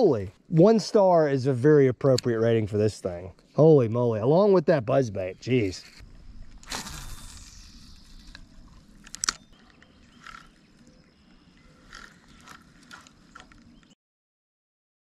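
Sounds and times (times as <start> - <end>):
fishing reel clicks: 6.6 - 10.6, 11.8 - 13.6.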